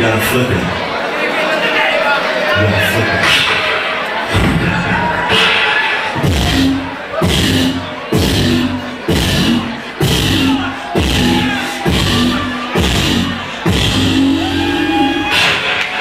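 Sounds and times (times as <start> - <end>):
crowd: 0.0 - 16.0
hip-hop beat with heavy kick: 3.2 - 16.0.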